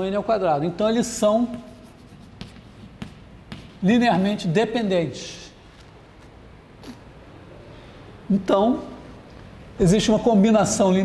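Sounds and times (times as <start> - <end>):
man speaking: 0.0 - 1.8, 3.8 - 5.6, 8.3 - 9.0, 9.8 - 11.0
chalk scraping on blackboard: 1.1 - 4.3.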